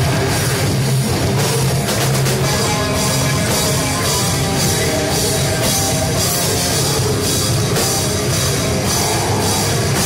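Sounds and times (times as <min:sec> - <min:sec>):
metal band playing live: 0:00.0 - 0:10.0.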